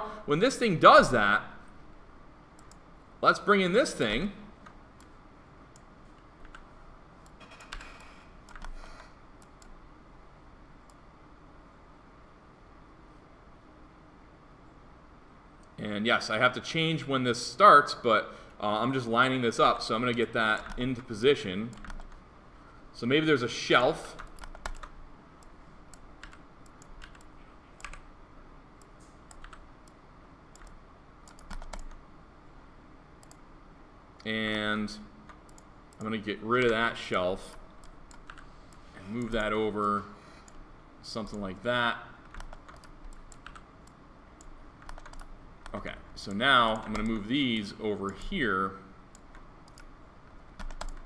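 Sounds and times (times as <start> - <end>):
keyboard and mouse clicks: 2.6 - 2.8, 4.6 - 9.8, 20.1 - 20.9, 21.7 - 22.2, 23.8 - 28.1, 28.8 - 32.0, 33.2 - 33.4, 35.3 - 36.8, 37.4 - 40.6, 42.2 - 45.8, 46.7 - 47.2, 49.1 - 51.0
mouse clicks: 24.2 - 28.0, 28.8 - 32.0, 33.2 - 33.4, 35.3 - 36.8, 49.1 - 49.9.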